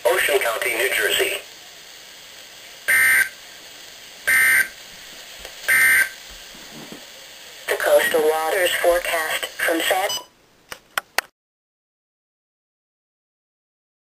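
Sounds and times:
screechy digital data tones: 2.9 - 3.4, 4.3 - 4.8, 5.7 - 6.2
person speaking: 7.7 - 10.3.

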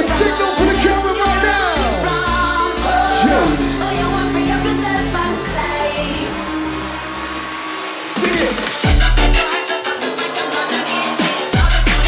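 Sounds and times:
bass: 0.0 - 9.5, 11.6 - 12.0
held synth tones: 0.4 - 9.4.

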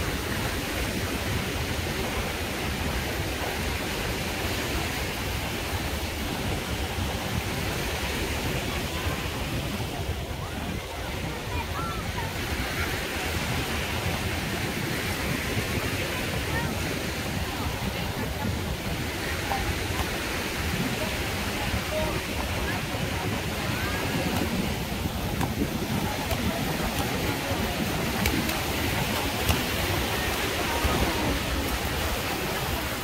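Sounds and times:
people talking: 0.0 - 33.0
small waves breaking: 0.0 - 33.0.

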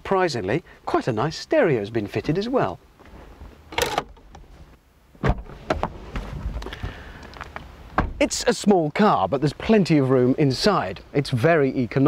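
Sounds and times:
car door click: 3.7 - 4.4
car door clunk: 3.7 - 4.5, 5.2 - 6.3, 8.0 - 8.2
knocks and rustles: 5.2 - 6.6.

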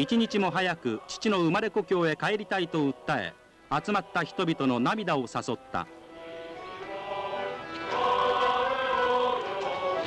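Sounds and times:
choir singing long held notes: 0.0 - 3.1, 3.8 - 4.9, 6.0 - 10.0.

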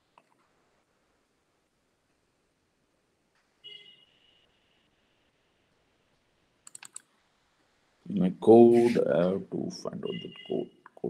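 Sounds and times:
computer keyboard clicks: 6.6 - 7.1
faint high tone: 8.1 - 11.0.

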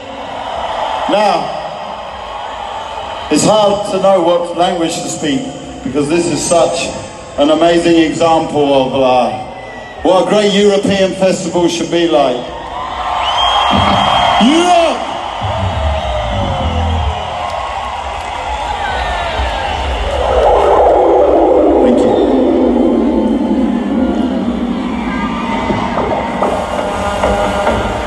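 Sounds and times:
crowd cheering: 0.0 - 8.0, 8.7 - 28.0
low bass thumps: 13.7 - 14.4, 15.4 - 17.5
falling synth sweep: 19.7 - 27.0
electronic swells: 20.0 - 26.8.

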